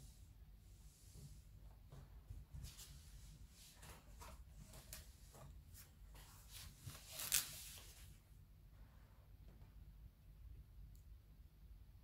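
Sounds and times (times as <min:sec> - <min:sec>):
handling rustles and scrapes: 0:02.5 - 0:08.2.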